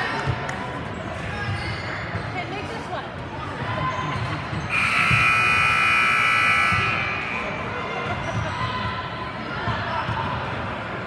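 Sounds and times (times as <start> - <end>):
gym buzzer tone: 4.7 - 7.4.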